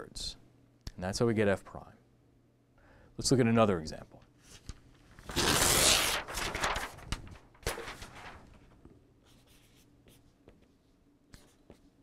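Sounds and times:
paper rustle: 0:04.5 - 0:09.8
marker scratching on paper: 0:09.3 - 0:10.2.

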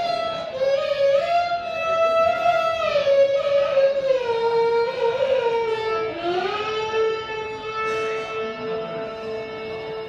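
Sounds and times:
violin melody: 0:00.0 - 0:10.0.

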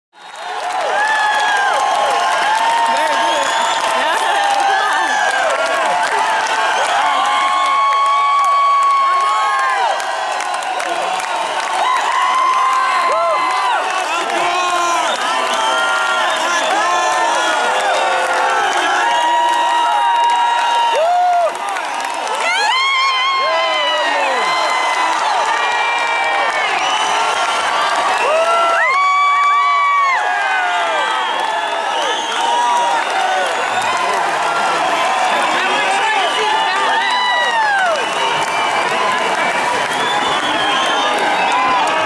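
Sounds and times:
crowd cheering and screaming: 0:00.2 - 0:42.0.

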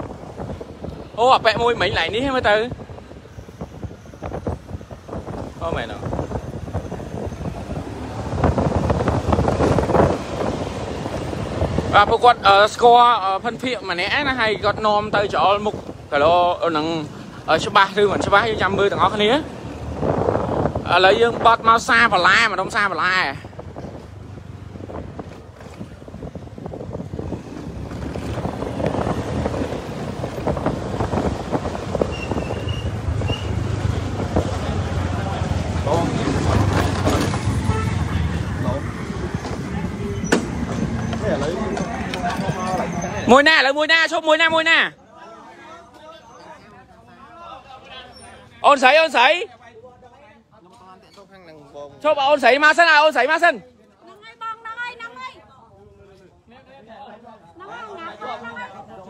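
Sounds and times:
motorbike engines running: 0:00.0 - 0:43.4
wind buffeting microphone: 0:00.0 - 0:43.5.

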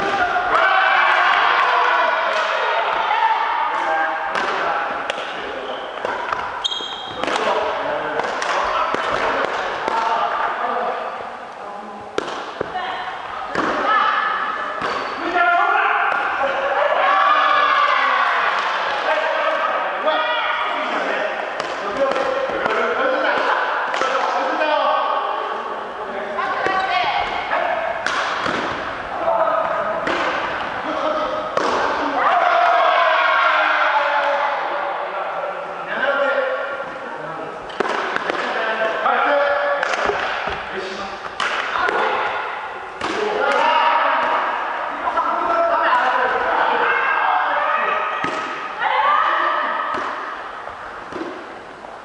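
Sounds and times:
people talking: 0:00.0 - 0:50.2
rackets hitting shuttlecock: 0:03.7 - 0:10.1, 0:12.2 - 0:12.8, 0:13.5 - 0:13.9, 0:14.8 - 0:15.4, 0:16.1 - 0:16.4, 0:21.5 - 0:24.4, 0:28.0 - 0:30.8, 0:31.4 - 0:32.1, 0:37.7 - 0:38.6, 0:39.4 - 0:42.4, 0:43.0 - 0:43.6, 0:48.2 - 0:48.8, 0:49.9 - 0:50.4, 0:51.1 - 0:51.5.

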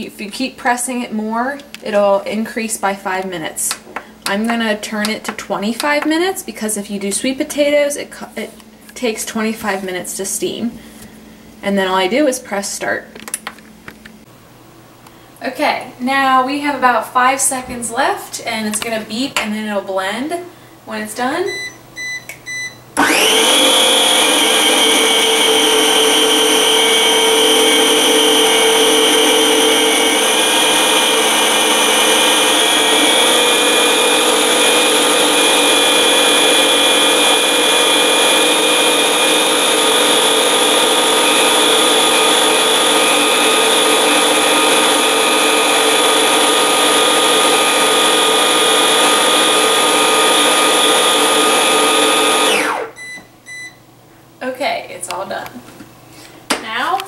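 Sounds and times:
blender motor whining: 0:23.0 - 0:53.1.

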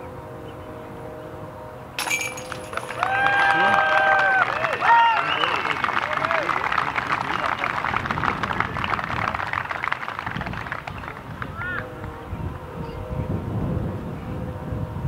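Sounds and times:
spectators clapping and cheering: 0:02.2 - 0:12.2.

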